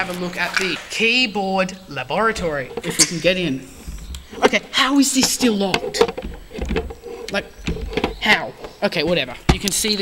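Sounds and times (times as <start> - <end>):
microphone handling rumble: 2.2 - 9.9.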